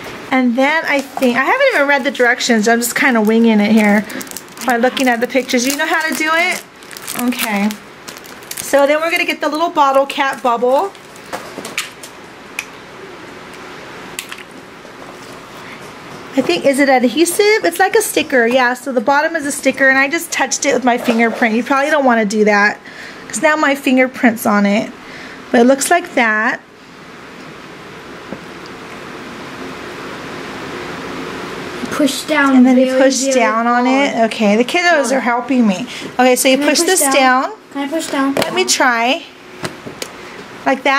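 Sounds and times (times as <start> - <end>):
low room noise: 0.0 - 40.9.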